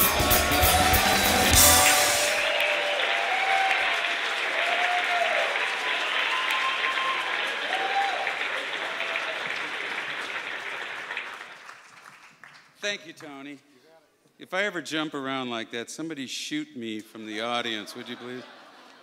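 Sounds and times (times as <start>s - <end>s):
audience applauding: 0.0s - 13.3s.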